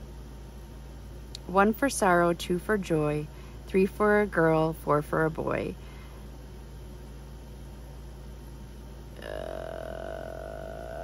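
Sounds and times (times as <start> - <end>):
low background hum: 0.0 - 11.0
woman humming: 9.2 - 11.0.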